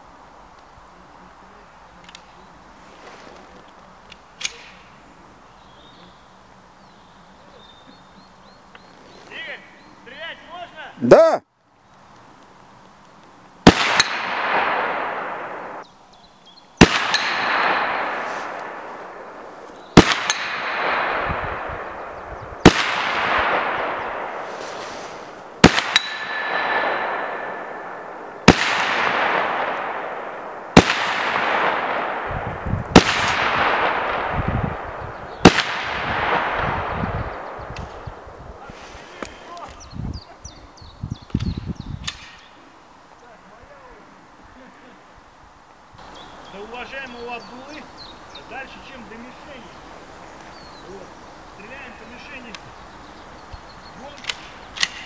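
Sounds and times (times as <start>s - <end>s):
gunshots with echo: 13.6s - 15.8s, 16.8s - 19.4s, 20.0s - 24.6s, 25.6s - 38.3s
steel plate ringing: 25.8s - 27.7s.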